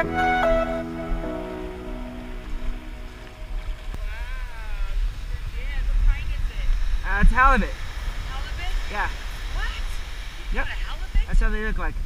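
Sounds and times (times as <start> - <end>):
background music: 0.0 - 3.6
surf rumble: 0.0 - 12.0
wind on microphone: 0.0 - 12.0.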